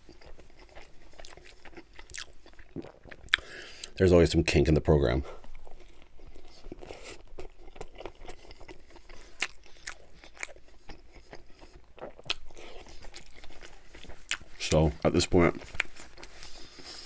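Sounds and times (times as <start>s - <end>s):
person chewing food: 0.0s - 4.0s, 5.3s - 17.0s.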